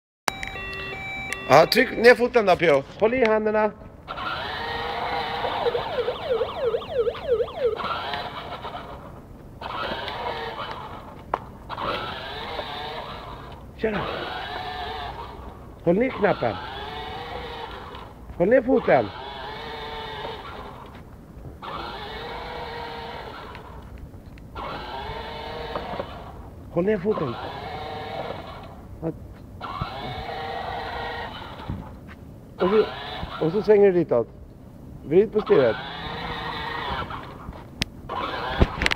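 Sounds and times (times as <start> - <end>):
warbling electronic sound effect: 5.6 - 8.3
toy electric motor whirring: 9.6 - 11.1, 11.7 - 18.1, 18.8 - 20.9, 24.6 - 26.4, 29.6 - 31.7, 35.4 - 37.4, 38.1 - 38.9.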